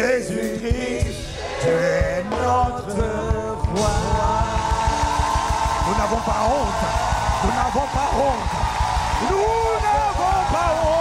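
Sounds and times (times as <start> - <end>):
worship band playing: 0.0 - 11.0
fast dense drumming: 0.7 - 11.0.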